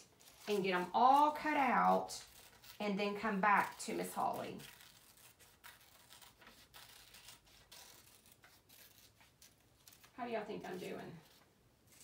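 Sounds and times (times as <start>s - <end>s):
scissors snipping paper: 0.1s - 10.1s.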